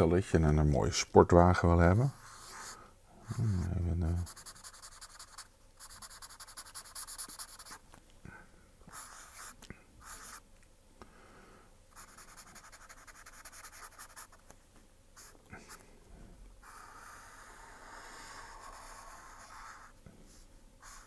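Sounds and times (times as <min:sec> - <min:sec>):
felt-tip marker scratching on paper: 0:04.2 - 0:07.8, 0:08.9 - 0:10.4, 0:11.9 - 0:14.5, 0:16.6 - 0:21.0.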